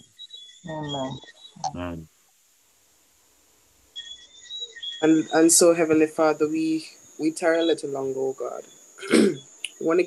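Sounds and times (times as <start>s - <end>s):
high-pitched insect trill: 3.9s - 10.0s.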